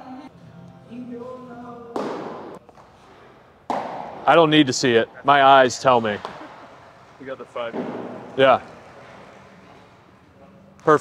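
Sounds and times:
baseball smacking into mitt: 2.0s - 2.9s, 3.7s - 4.2s.

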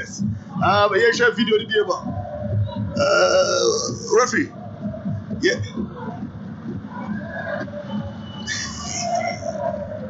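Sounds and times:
men talking: 0.0s - 2.1s, 3.0s - 4.6s, 5.4s - 5.7s.

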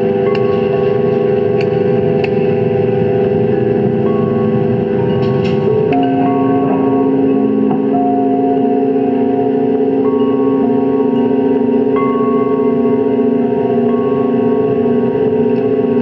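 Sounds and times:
electronic drone synthesizer tones: 0.0s - 16.0s.

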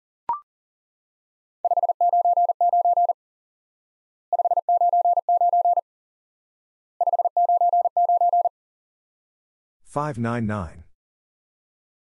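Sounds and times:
morse code beeps: 1.7s - 3.2s, 4.3s - 5.8s, 7.0s - 8.5s.

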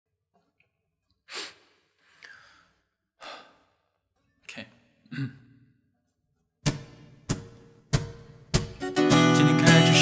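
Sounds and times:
person sighing: 1.3s - 4.0s, 5.0s - 5.8s.

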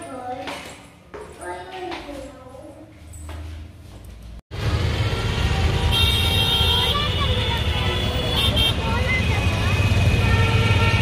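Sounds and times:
traffic rumble: 0.0s - 11.0s
vehicle horns honking: 4.8s - 11.0s.

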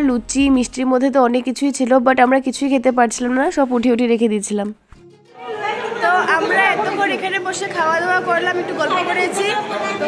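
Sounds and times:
people chattering: 5.3s - 10.0s.

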